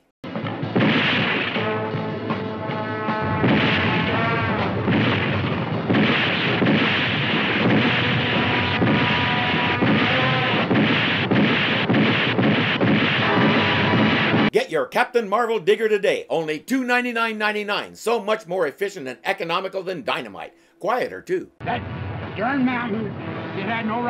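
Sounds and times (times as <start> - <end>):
soundtrack music: 0.3 - 14.5, 20.1 - 24.0.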